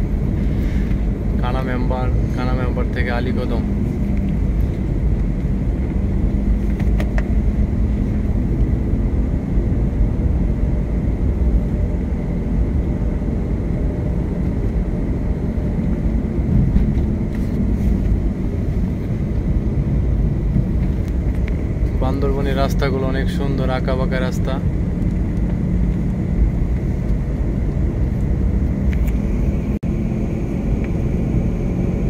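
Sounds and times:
car engine and tyre rumble: 0.0s - 32.0s.

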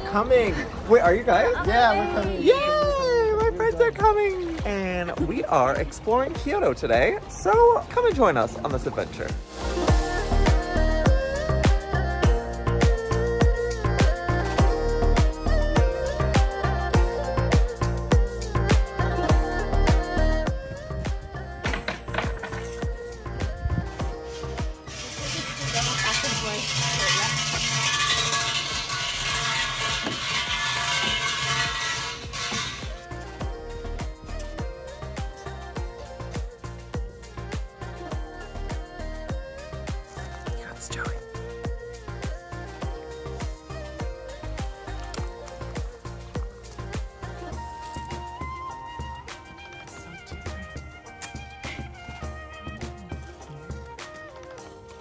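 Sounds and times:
background music: 0.0s - 55.0s
brass bells jingling: 24.9s - 33.0s.

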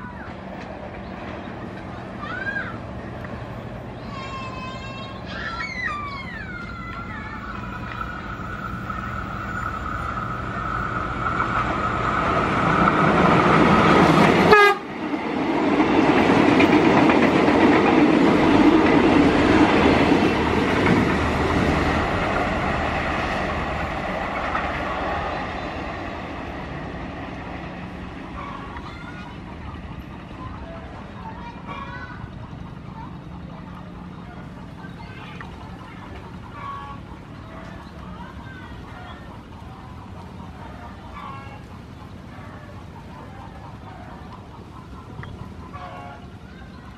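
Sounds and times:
train passing at speed: 0.0s - 46.9s
train running noise: 0.0s - 46.9s
train horn blast: 14.4s - 15.0s.

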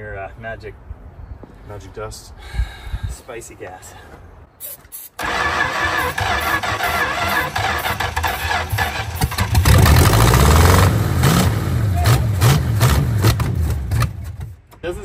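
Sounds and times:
engine cranking on starter: 5.2s - 10.9s.

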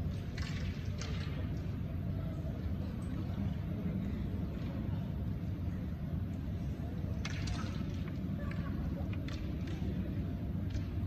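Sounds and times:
low rumble of hall background noise: 0.0s - 11.0s.

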